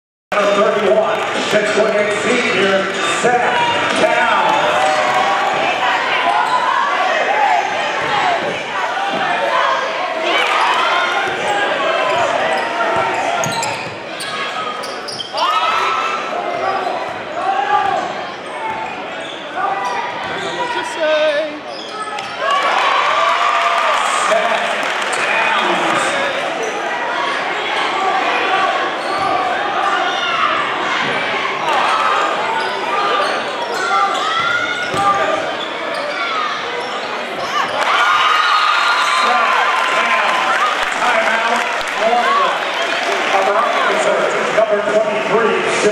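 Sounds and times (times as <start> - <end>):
crowd and players' voices: 0.3 - 45.9
sneaker squeaks: 11.4 - 16.0, 16.6 - 17.2, 17.8 - 22.5, 28.9 - 29.5, 32.2 - 37.9.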